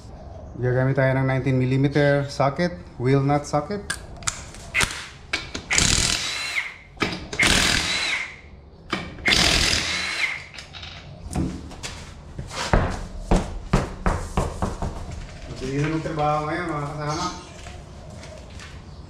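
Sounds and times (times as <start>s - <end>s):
impact wrench whining: 4.8s - 10.8s.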